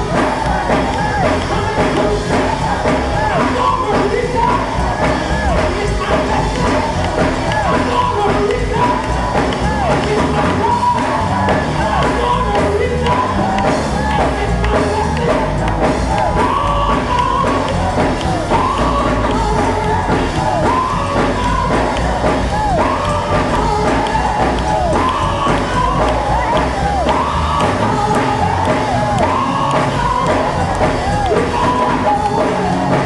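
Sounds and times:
gospel choir singing with band: 0.0 - 33.0.

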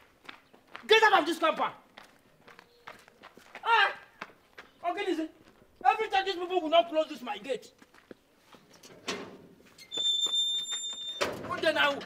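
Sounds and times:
gate scraping shut: 8.8 - 12.0.

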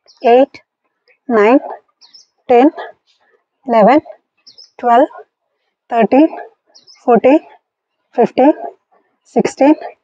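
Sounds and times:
woman counting aloud: 0.2 - 0.6, 1.3 - 1.8, 2.5 - 2.9, 3.7 - 4.1, 4.8 - 5.2, 5.9 - 6.5, 7.1 - 7.5, 8.2 - 8.8, 9.4 - 10.0.

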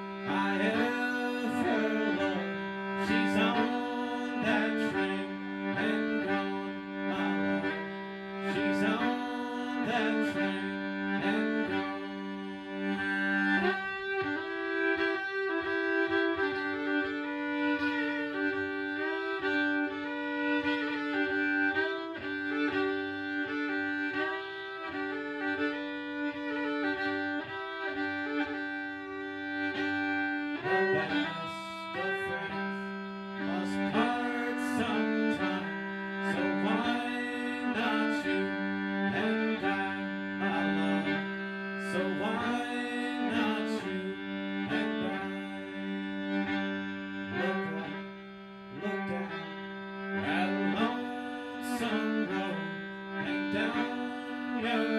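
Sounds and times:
solo fiddle playing: 0.0 - 54.9.

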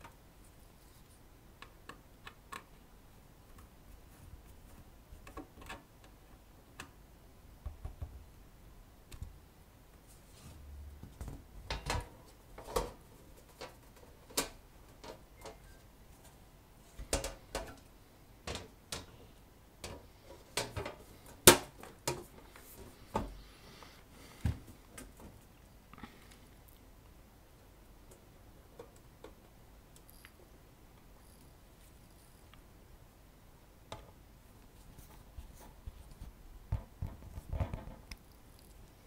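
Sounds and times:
sheet metal cover clicks and knocks: 11.2 - 15.6, 17.0 - 17.8.

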